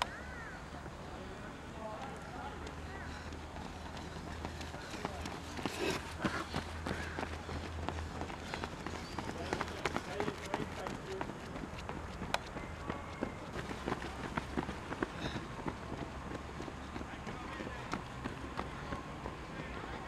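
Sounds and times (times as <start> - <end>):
footsteps on running track: 0.0 - 20.0.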